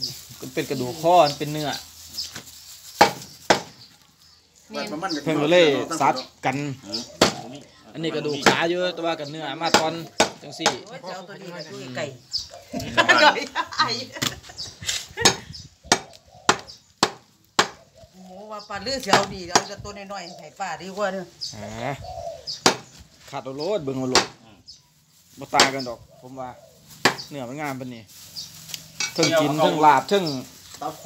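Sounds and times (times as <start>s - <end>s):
knife chopping on wooden block: 7.2s - 7.4s, 15.2s - 17.8s.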